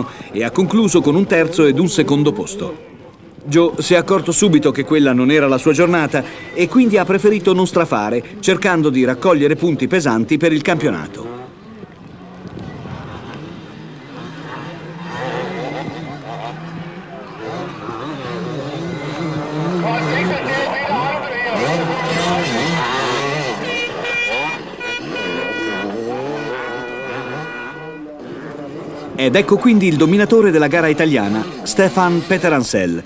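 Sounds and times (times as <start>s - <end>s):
motorcycle engines revving: 0.0s - 33.0s.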